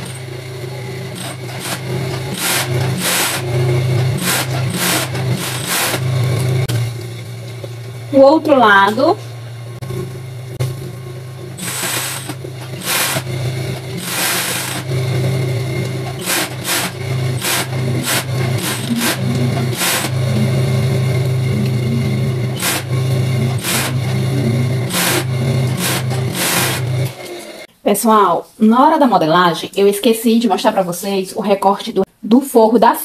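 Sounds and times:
overlock machine stitching: 0:00.0 - 0:07.0, 0:09.7 - 0:27.7.

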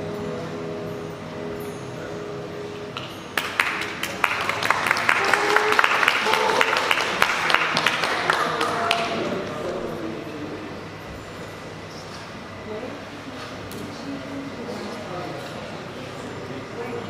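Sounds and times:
audience applause: 0:03.4 - 0:09.9
quiet murmuring voices: 0:04.9 - 0:17.0.

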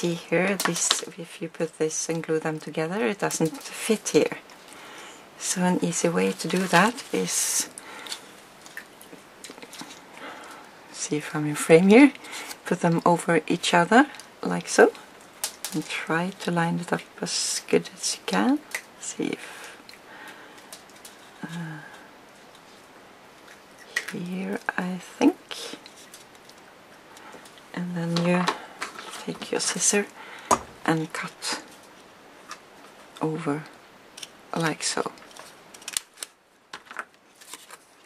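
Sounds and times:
paper strips rustling: 0:05.9 - 0:10.0, 0:34.2 - 0:38.0.

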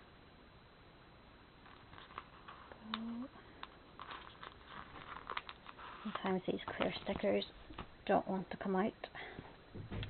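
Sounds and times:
person humming: 0:02.8 - 0:03.4.

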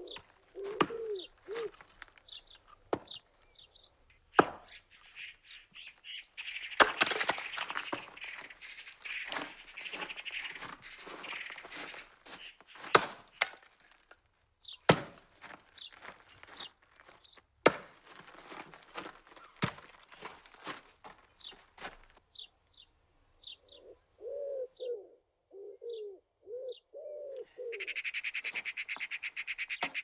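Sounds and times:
birds chirping: 0:00.0 - 0:13.6, 0:14.5 - 0:14.9, 0:15.6 - 0:17.5, 0:19.2 - 0:19.7, 0:21.2 - 0:30.0
axe splitting firewood: 0:04.4 - 0:04.7, 0:06.8 - 0:08.1, 0:12.3 - 0:14.2, 0:14.8 - 0:21.2.

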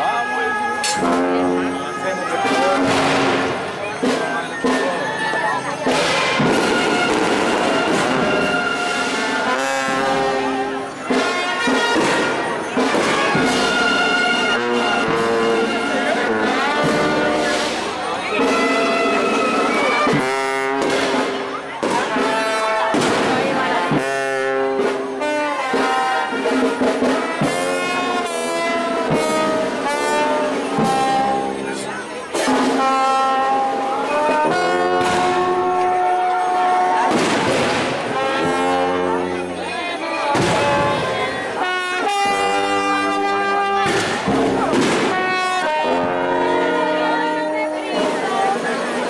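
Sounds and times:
brass band playing: 0:00.0 - 0:49.0
crowd noise and voices: 0:00.0 - 0:49.0
sharp percussive hits: 0:00.8 - 0:01.7.

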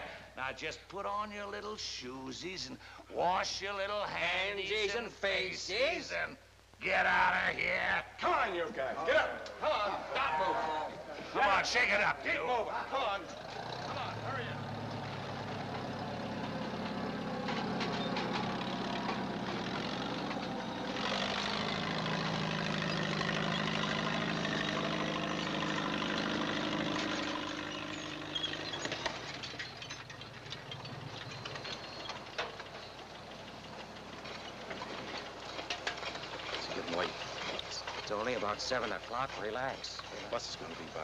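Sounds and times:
vehicle engine running: 0:11.8 - 0:41.0.

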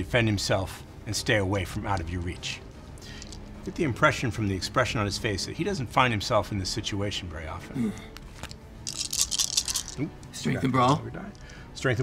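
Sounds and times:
dice rattling in a hand: 0:03.2 - 0:03.5, 0:08.4 - 0:10.0.

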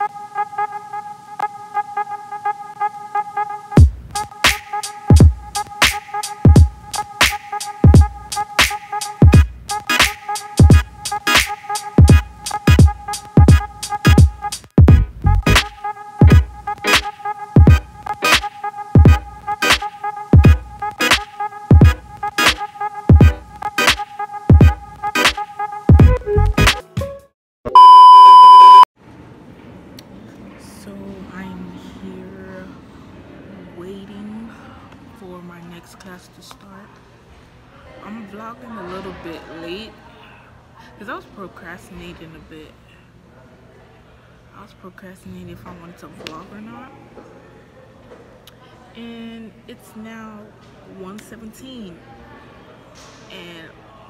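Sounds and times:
music with heavy bass beats: 0:03.8 - 0:26.9
steady held tone: 0:27.7 - 0:28.8
high electronic beep: 0:27.7 - 0:28.9.

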